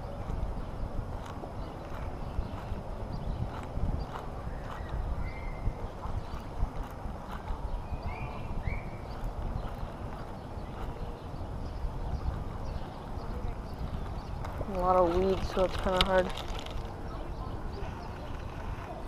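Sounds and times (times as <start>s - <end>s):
microphone handling and wind rumble: 0.0s - 19.0s.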